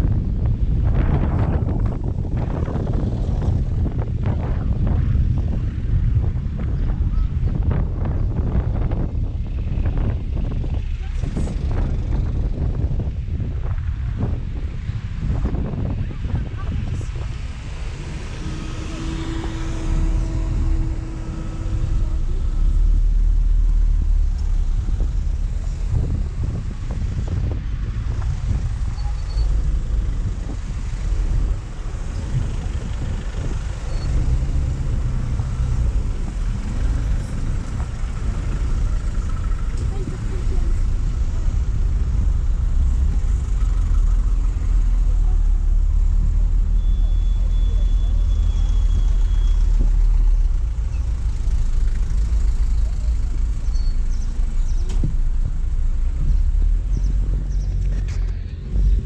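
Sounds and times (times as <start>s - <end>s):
road noise: 0.0s - 59.0s
traffic engine rumble: 0.0s - 59.0s.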